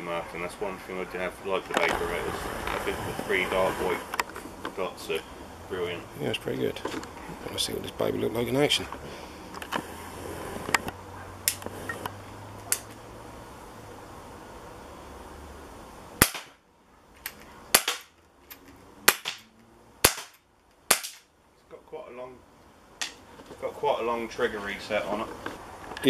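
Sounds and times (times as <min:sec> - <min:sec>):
air pistol shots: 0:16.2 - 0:16.6, 0:17.7 - 0:18.1, 0:19.0 - 0:21.3.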